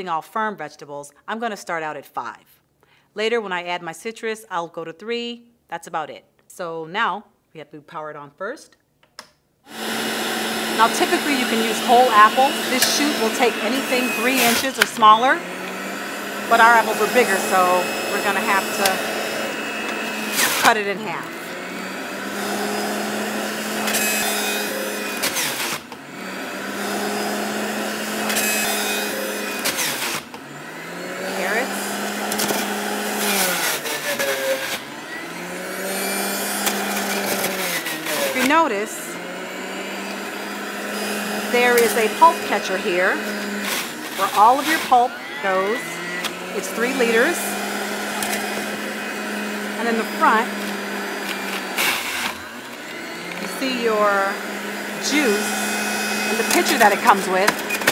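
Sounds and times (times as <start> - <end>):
juicer motor hum: 9.7 - 57.9
produce grinding in juicer: 9.7 - 57.9.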